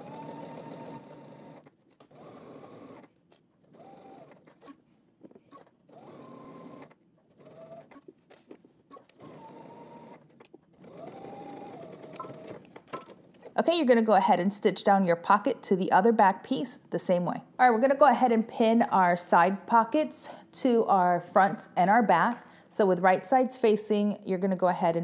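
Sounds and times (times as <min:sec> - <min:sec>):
sewing machine stitching: 0:00.0 - 0:04.8, 0:05.4 - 0:08.1, 0:08.9 - 0:13.6.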